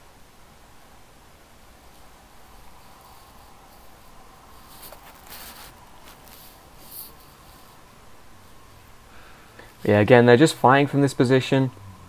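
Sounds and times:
faint background hiss: 0:00.0 - 0:12.0
thin steady hum: 0:00.0 - 0:12.0
soft rustles or clicks: 0:01.8 - 0:07.8.

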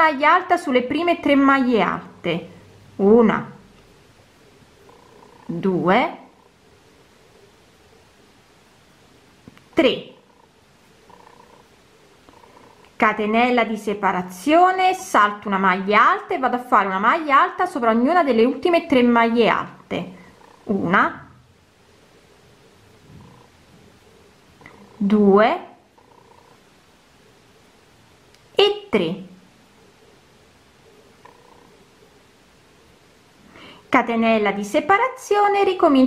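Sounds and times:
faint background noise: 0:00.0 - 0:36.0.

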